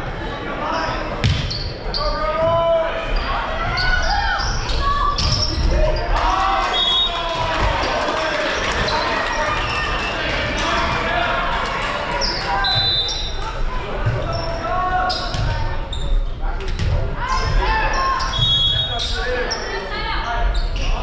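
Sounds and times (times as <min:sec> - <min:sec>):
people talking and calling out: 0:00.0 - 0:21.0
sneakers squeaking on floor: 0:00.7 - 0:02.5, 0:03.2 - 0:06.0, 0:14.0 - 0:21.0.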